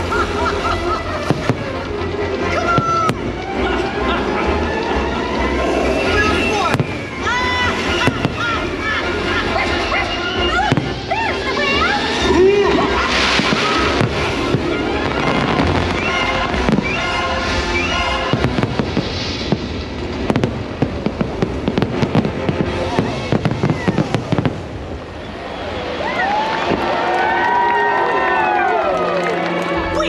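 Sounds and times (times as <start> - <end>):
fireworks bangs and crackles: 0.0 - 27.3
fireworks show music: 0.0 - 30.0
fireworks whistles: 4.7 - 26.8.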